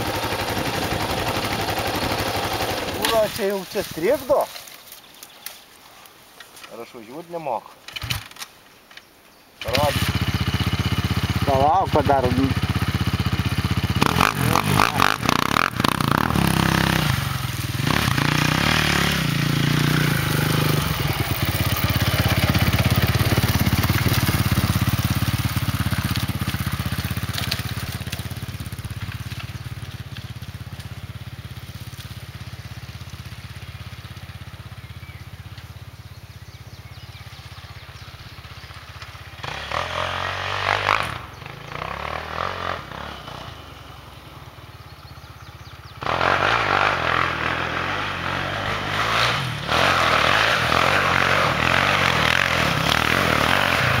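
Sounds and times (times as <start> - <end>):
quad bike engine revving: 0.0 - 4.2, 9.6 - 35.3, 38.4 - 44.0, 45.3 - 54.0.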